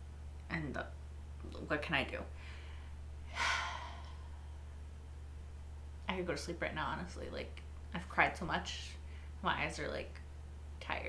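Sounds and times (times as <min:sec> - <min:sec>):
woman's sharp intake of breath: 0:02.4 - 0:04.5.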